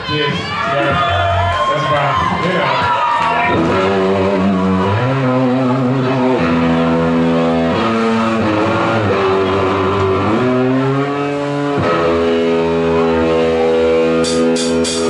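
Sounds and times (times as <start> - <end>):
bass line: 0.5 - 15.0
electric guitar bending notes: 3.2 - 15.0
drum hits: 14.2 - 15.0.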